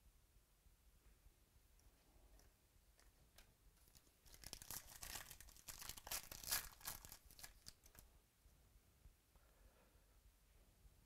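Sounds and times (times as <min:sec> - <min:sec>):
wrapper tearing and crinkling: 0:03.9 - 0:08.0.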